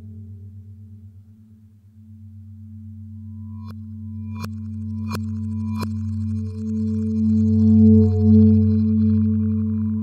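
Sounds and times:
low ambient drones: 0.0s - 10.0s.

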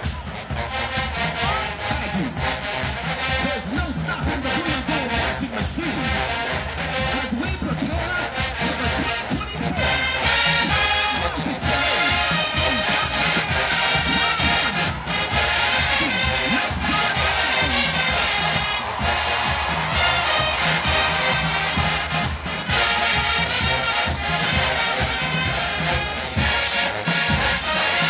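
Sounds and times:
marching band brass and drums: 0.0s - 28.0s.

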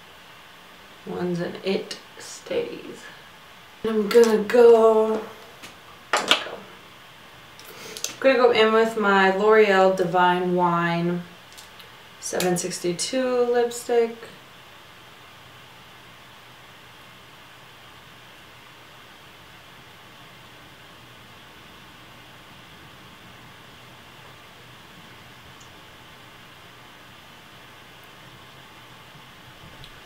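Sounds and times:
faint steady hiss: 0.0s - 30.0s.

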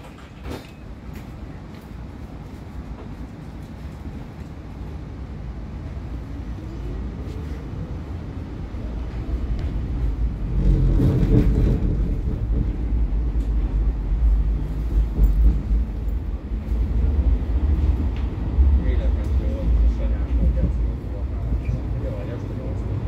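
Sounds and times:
tram wheels rumbling: 0.0s - 23.0s.

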